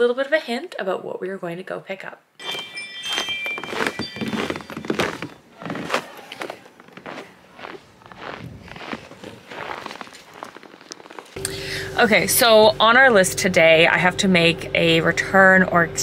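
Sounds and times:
footsteps in snow: 0:02.4 - 0:11.4.

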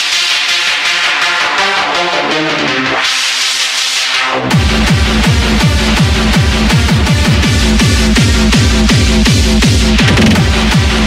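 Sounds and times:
synth lead chords: 0:00.0 - 0:11.0
hard kick drum: 0:04.5 - 0:11.0.

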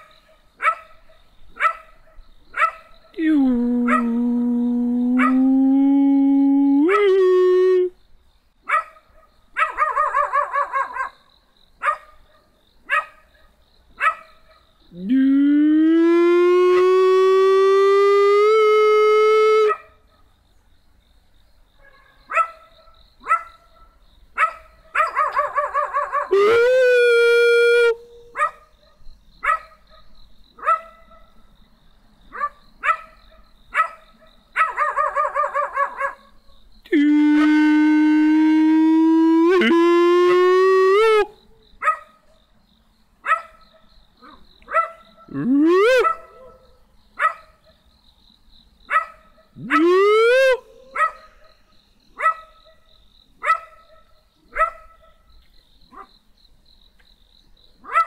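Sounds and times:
dog barking: 0:00.6 - 0:01.0, 0:01.6 - 0:02.9, 0:05.2 - 0:05.4, 0:08.7 - 0:11.2, 0:11.8 - 0:14.7, 0:21.8 - 0:26.3, 0:28.3 - 0:31.4, 0:32.3 - 0:36.3, 0:41.8 - 0:42.4, 0:43.2 - 0:45.3, 0:46.0 - 0:47.8, 0:48.9 - 0:49.7, 0:50.8 - 0:51.6, 0:52.2 - 0:55.2, 0:55.9 - 0:56.1
long loud howls: 0:15.0 - 0:19.8, 0:26.2 - 0:28.0, 0:36.9 - 0:41.3, 0:49.6 - 0:50.7.

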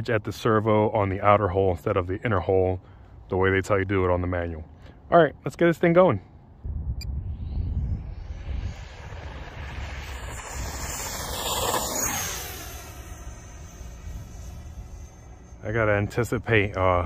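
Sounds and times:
low rumble: 0:06.5 - 0:17.0
electric ducted fan whining: 0:06.8 - 0:17.0.

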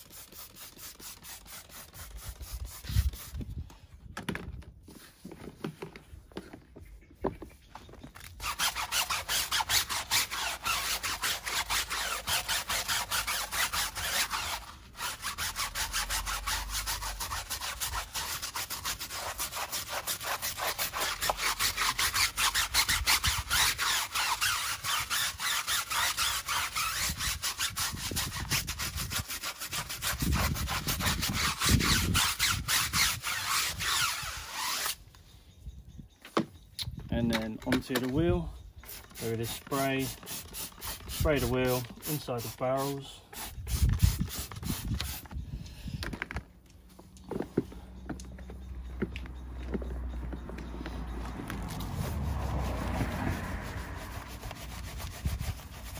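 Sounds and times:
brush scrubbing a soapy tyre: 0:00.0 - 0:03.4, 0:08.4 - 0:35.0, 0:38.9 - 0:45.2, 0:51.6 - 0:55.9.

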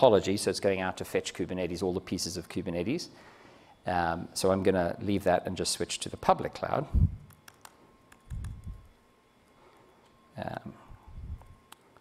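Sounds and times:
laptop keys clicking: 0:07.2 - 0:08.9.

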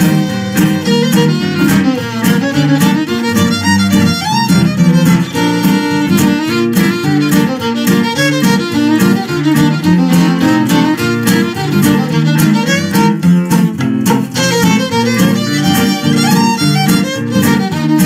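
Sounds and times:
fiddle playing fast melody: 0:00.0 - 0:18.0
strummed acoustic guitar: 0:00.0 - 0:18.0.

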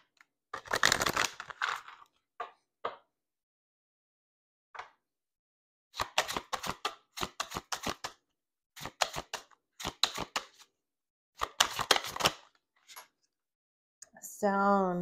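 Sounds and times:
cards being shuffled: 0:00.6 - 0:02.1, 0:06.0 - 0:08.2, 0:08.8 - 0:10.7, 0:11.4 - 0:12.5.

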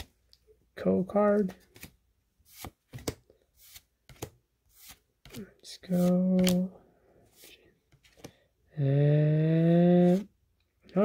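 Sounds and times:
cards swishing against cards: 0:01.4 - 0:06.7.

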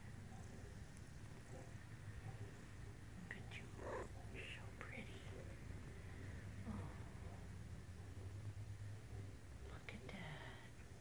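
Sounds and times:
faint low hum: 0:00.0 - 0:11.0
woman whispering softly: 0:03.2 - 0:05.5, 0:09.6 - 0:10.8.

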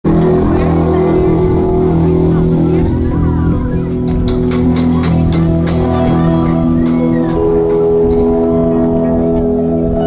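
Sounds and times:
live rock band sustained chord: 0:00.1 - 0:10.0.

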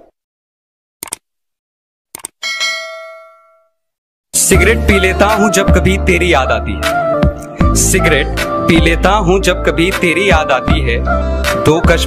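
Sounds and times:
notification bell ding: 0:02.4 - 0:03.7.

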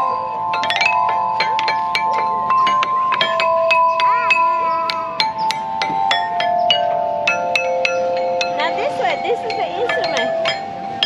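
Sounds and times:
metal chime bars struck: 0:00.0 - 0:11.0.

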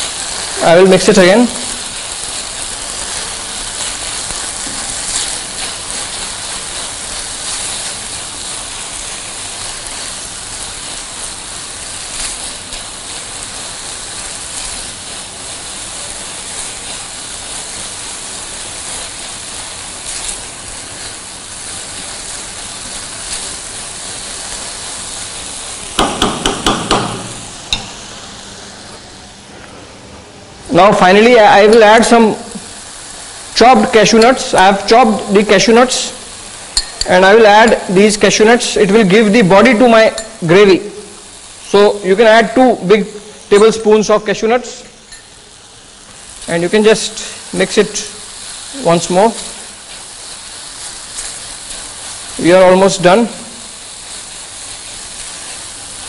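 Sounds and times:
masala sizzling in oil: 0:00.0 - 0:56.0.

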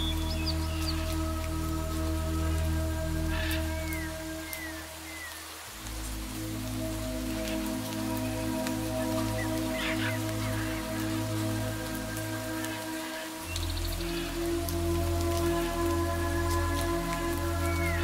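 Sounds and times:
ambient music with held chords: 0:00.0 - 0:18.0
rain pattering: 0:00.0 - 0:18.0.

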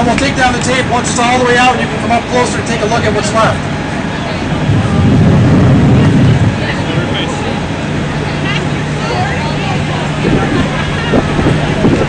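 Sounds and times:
faint voices: 0:00.0 - 0:12.0
low engine hum: 0:00.0 - 0:12.0
loud low rumble: 0:04.3 - 0:09.3.

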